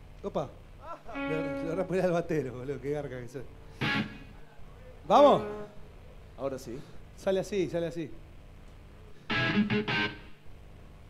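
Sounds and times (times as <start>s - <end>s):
electric guitar strummed chords: 1.1s - 2.0s, 3.8s - 4.3s, 9.3s - 10.4s.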